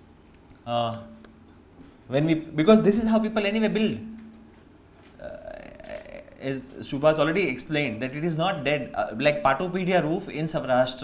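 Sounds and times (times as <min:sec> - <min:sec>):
man talking: 0:00.7 - 0:01.2, 0:02.1 - 0:04.1, 0:05.2 - 0:11.0
drawn-out hesitation uh: 0:05.0 - 0:06.4.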